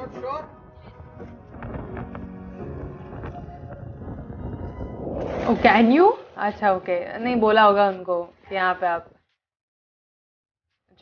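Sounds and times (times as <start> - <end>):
wind buffeting microphone: 0.2 - 7.4.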